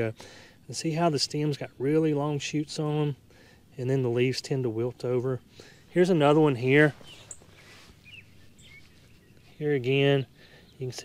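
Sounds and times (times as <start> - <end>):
outdoor background noise: 0.0 - 11.0
faint bird chirps: 6.7 - 11.0.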